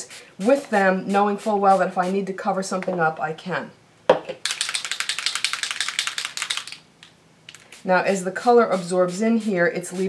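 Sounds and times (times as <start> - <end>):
mixing balls rattling in spray bottle: 4.4 - 6.9.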